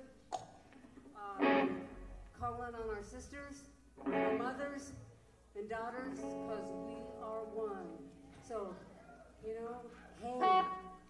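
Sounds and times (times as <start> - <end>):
electric guitar chord: 1.3 - 2.3, 4.0 - 4.8, 6.0 - 8.1.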